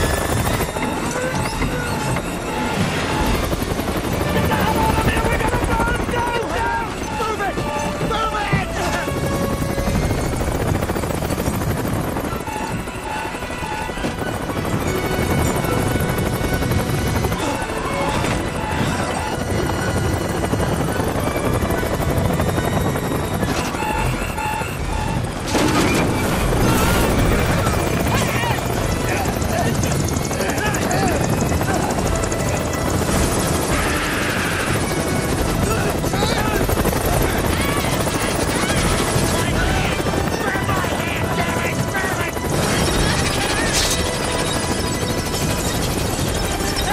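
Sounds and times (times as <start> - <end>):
dramatic score music: 0.0 - 46.9
helicopter rotor and engine: 0.0 - 46.9
people shouting: 4.4 - 9.0, 26.5 - 28.8, 33.7 - 42.3.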